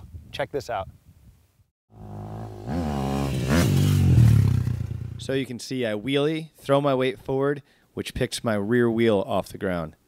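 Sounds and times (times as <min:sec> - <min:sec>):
dirt bike engine revving: 0:01.9 - 0:05.3.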